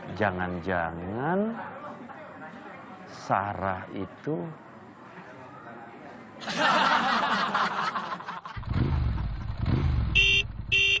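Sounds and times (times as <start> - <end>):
motor scooter engine revving: 8.6 - 11.0
scooter horn beeps: 10.2 - 11.0.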